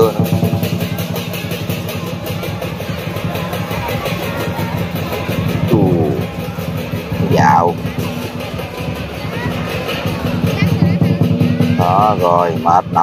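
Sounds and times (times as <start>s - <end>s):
man's voice: 0.0s - 0.3s, 7.2s - 7.8s, 11.8s - 13.0s
lion dance percussion: 0.0s - 13.0s.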